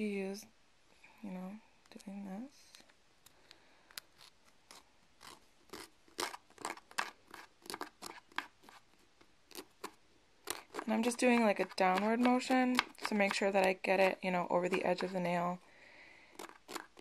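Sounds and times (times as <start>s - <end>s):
nail file strokes on fingernail: 4.0s - 13.7s, 16.3s - 17.0s.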